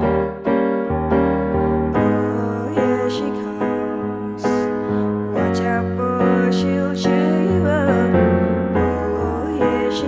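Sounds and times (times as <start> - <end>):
digital piano chords: 0.0 - 10.0.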